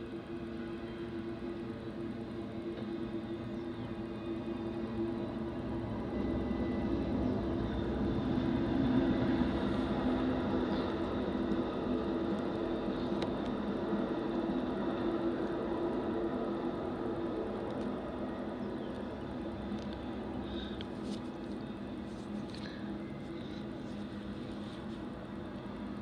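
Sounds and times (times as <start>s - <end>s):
low even drone: 0.0s - 26.0s
trains rumbling on rails: 0.0s - 26.0s.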